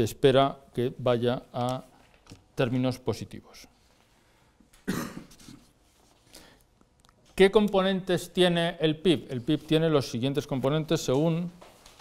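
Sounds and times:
person coughing: 4.8 - 5.7.

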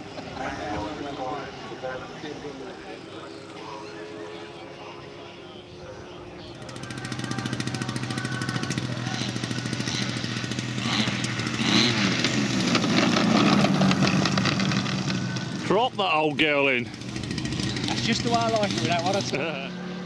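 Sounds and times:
model aircraft piston engines: 0.0 - 20.0.

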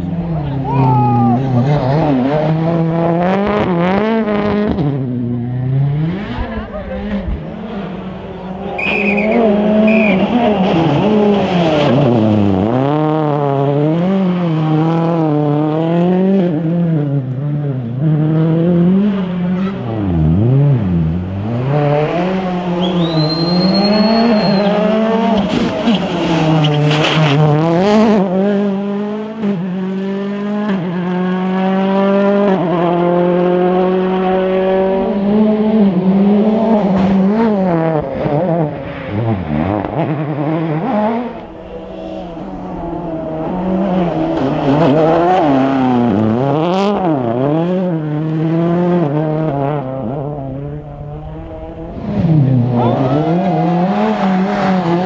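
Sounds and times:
rally car engine revving: 0.0 - 55.0
tyre squeal: 8.7 - 10.4, 22.8 - 27.1.

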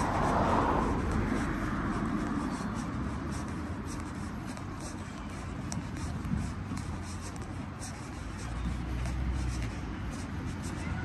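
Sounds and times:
soft rustling and scuffing: 0.0 - 11.0.

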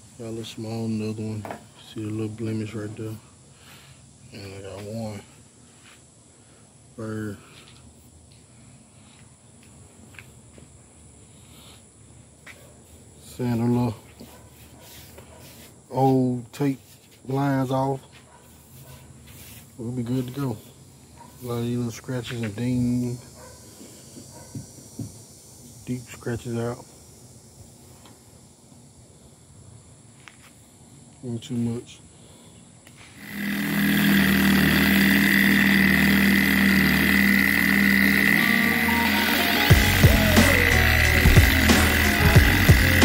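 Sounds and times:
faint steady background noise: 0.0 - 33.3
high-pitched insect drone: 21.4 - 28.6, 33.0 - 43.0.

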